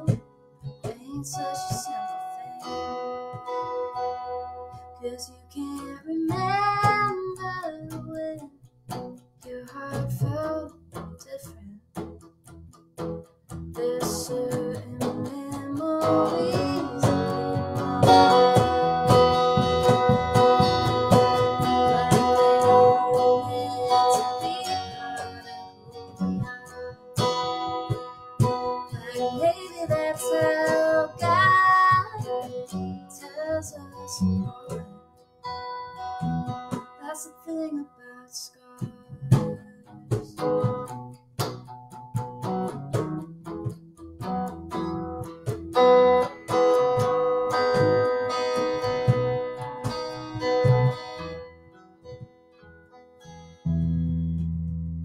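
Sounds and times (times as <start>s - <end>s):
live band guitar and bass: 0.0s - 37.0s, 38.8s - 52.3s, 53.4s - 55.0s.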